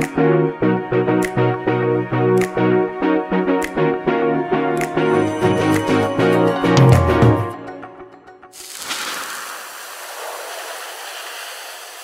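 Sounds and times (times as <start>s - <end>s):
background music: 0.0s - 8.8s.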